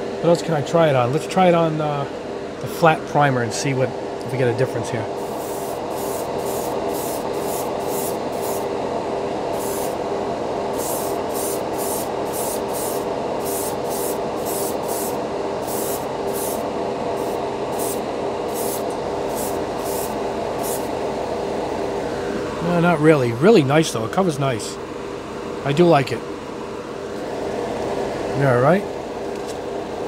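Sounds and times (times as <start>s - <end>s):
fan humming: 0.0s - 30.0s
airbrush spraying hissing bursts: 5.2s - 8.7s, 9.6s - 10.0s, 10.8s - 16.6s, 17.2s - 20.9s.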